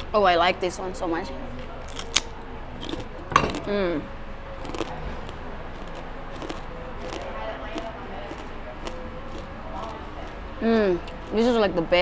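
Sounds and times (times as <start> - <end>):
murmur of voices: 0.0 - 12.0
person chewing crunchy chip: 1.8 - 3.8, 4.6 - 11.3.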